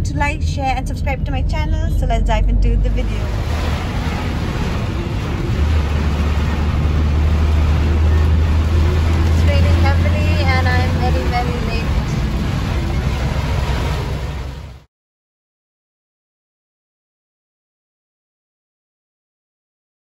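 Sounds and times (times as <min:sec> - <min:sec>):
car engine and tyre rumble: 0:00.0 - 0:14.9.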